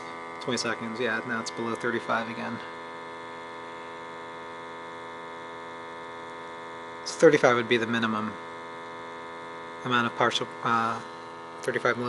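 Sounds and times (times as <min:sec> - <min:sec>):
buzzy electrical hum: 0:00.0 - 0:12.0.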